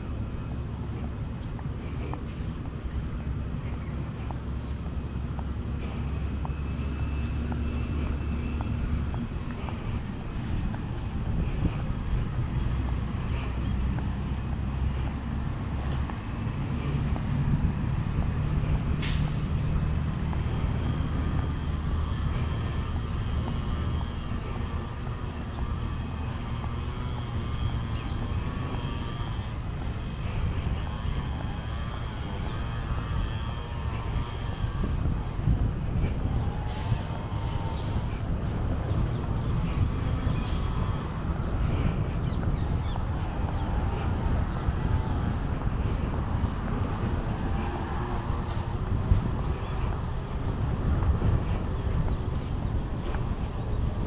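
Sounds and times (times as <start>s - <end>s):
heavy truck engine running: 0.0s - 54.0s
road traffic rumble: 0.0s - 54.0s.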